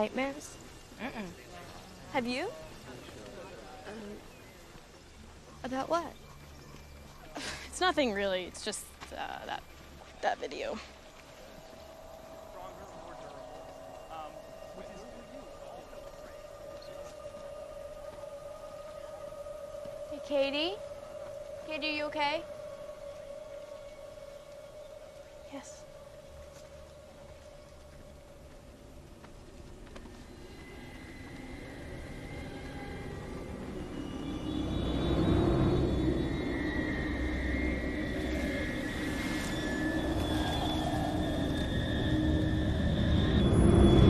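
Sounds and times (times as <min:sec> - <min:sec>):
high-pitched eerie drone: 0:00.0 - 0:44.0
thin sustained high tones: 0:00.0 - 0:44.0.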